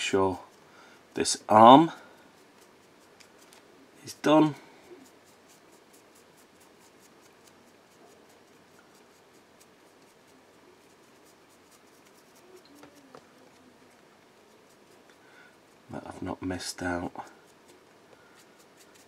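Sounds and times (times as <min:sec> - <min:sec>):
brush bristles scratching plastic: 0:00.0 - 0:19.0.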